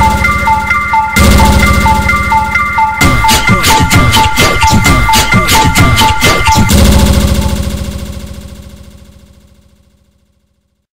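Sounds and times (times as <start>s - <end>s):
pulsing low synthesizer note: 0.0s - 9.7s.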